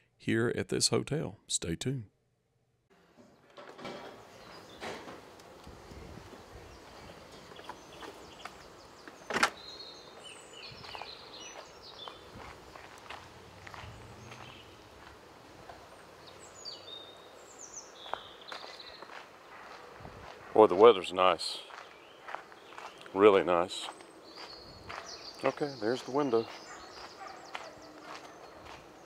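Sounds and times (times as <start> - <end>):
door shutting: 3.0 - 6.4, 9.0 - 9.6
light footsteps: 4.4 - 9.3, 10.1 - 16.4, 18.0 - 29.0
bird chirps: 6.6 - 15.1, 16.1 - 20.0, 20.8 - 29.0.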